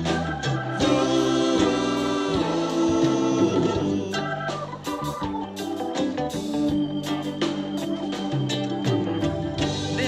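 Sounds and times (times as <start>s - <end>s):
voices singing together: 0.0s - 5.4s
bass: 0.0s - 10.0s
drums: 0.0s - 10.0s
electric guitar: 0.0s - 10.0s
organ chords: 0.0s - 10.0s.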